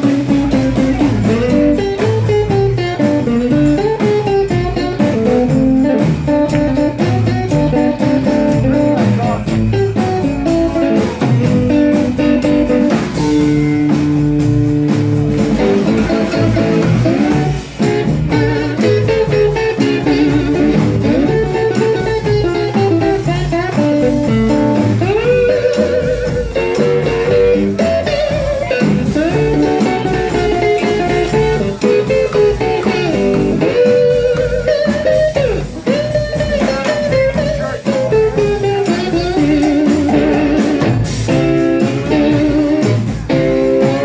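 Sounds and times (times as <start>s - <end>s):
blues band playing: 0.0s - 44.0s
electric guitar solo: 0.0s - 44.0s.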